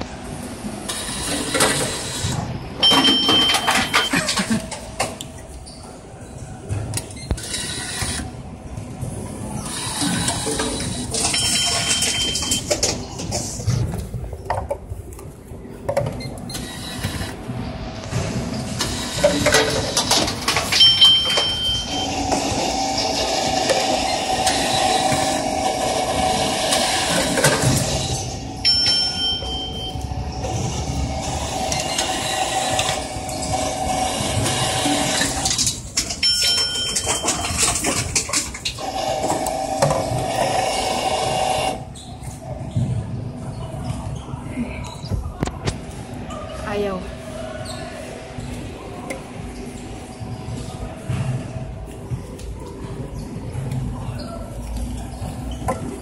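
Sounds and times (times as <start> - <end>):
vending machine mechanism running: 0.0 - 5.3, 9.4 - 13.6, 16.3 - 41.9
short electronic beeps: 2.8 - 4.1.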